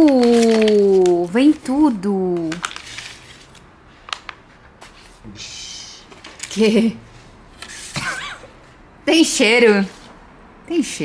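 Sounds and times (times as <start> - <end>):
foil packets crinkling: 0.0 - 4.4.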